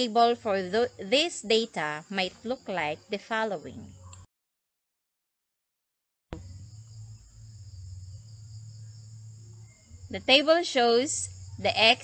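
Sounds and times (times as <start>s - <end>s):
click: 4.1s - 4.3s
low electrical hum: 6.4s - 12.0s.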